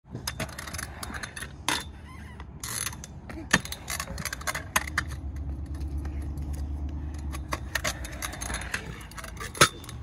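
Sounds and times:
scooter wheels clicking and rattling: 0:00.1 - 0:10.0.

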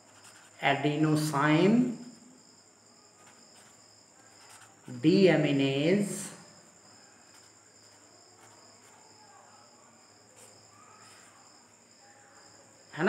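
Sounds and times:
marker scratching on paper: 0:00.0 - 0:01.7, 0:03.2 - 0:05.4, 0:07.3 - 0:09.2, 0:10.4 - 0:11.5.

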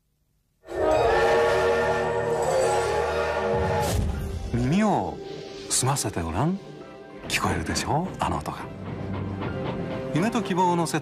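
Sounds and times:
steam locomotive whistle: 0:00.7 - 0:04.3.

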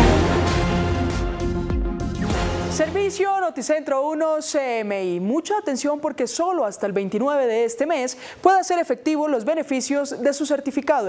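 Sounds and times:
held musical chord: 0:00.0 - 0:03.2
musical hit: 0:00.0 - 0:03.2
news theme jingle: 0:00.0 - 0:03.3.

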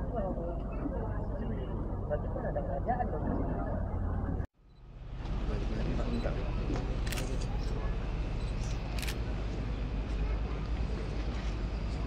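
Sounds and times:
low outdoor rumble: 0:00.0 - 0:12.0
camera shutter click: 0:08.6 - 0:09.2.

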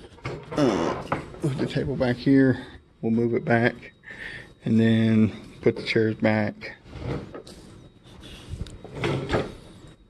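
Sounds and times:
table shifted over carpet: 0:06.9 - 0:07.6.

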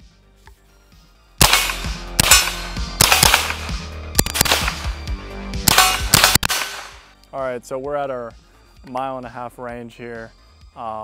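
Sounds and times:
rifle firing quick shots: 0:01.4 - 0:05.1, 0:05.7 - 0:07.1.

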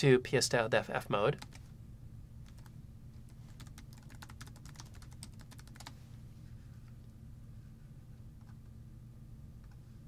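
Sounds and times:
computer keyboard typing: 0:01.4 - 0:01.7, 0:02.4 - 0:02.7, 0:03.5 - 0:06.0.

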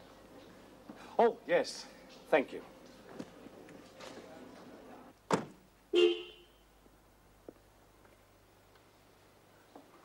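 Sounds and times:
car door shutting: 0:05.3 - 0:05.6
short car horn toot: 0:06.0 - 0:06.6.

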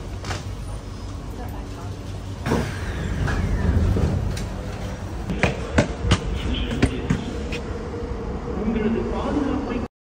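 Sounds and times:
train cabin low hum: 0:00.0 - 0:09.9.

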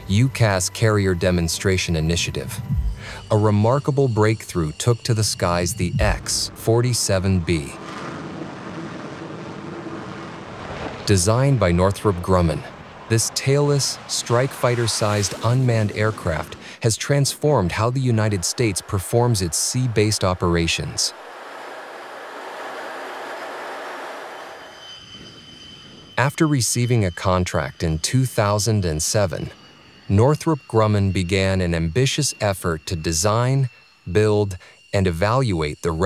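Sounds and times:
jet engine running: 0:00.0 - 0:35.3
faint high whine: 0:00.0 - 0:36.0.

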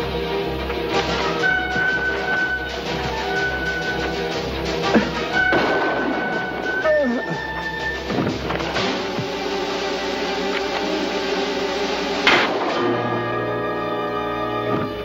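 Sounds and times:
orchestral underscore: 0:00.0 - 0:15.0
sharp crash hit: 0:05.4 - 0:06.6, 0:12.2 - 0:13.1.

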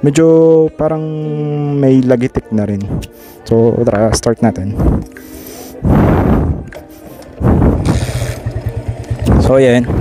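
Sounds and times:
motorcycle engine starting: 0:06.1 - 0:10.0
engine running: 0:06.5 - 0:10.0.

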